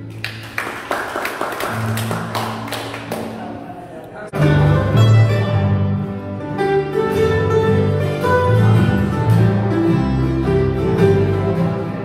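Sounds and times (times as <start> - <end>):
country string band playing: 4.3 - 12.0.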